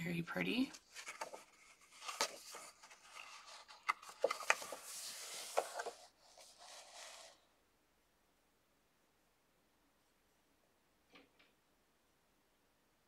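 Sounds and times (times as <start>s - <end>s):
paper pages rustling: 0.6s - 7.4s.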